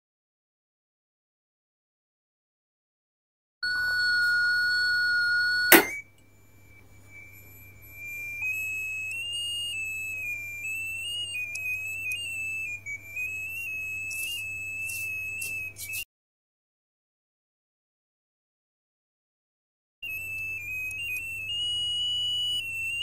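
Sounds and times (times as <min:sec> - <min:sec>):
high electronic beep: 0:03.6 - 0:06.0
wavering electronic tone: 0:03.6 - 0:15.6.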